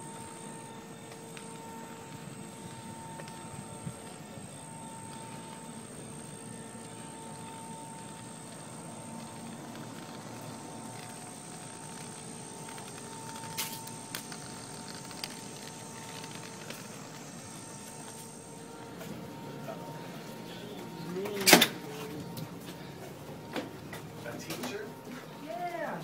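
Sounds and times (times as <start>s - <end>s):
outdoor background hum: 0.0s - 26.0s
thin high whine: 0.0s - 26.0s.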